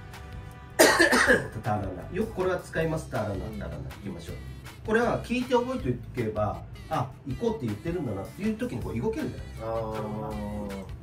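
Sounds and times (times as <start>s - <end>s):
quiet background music: 0.0s - 11.0s
person coughing: 0.8s - 1.6s.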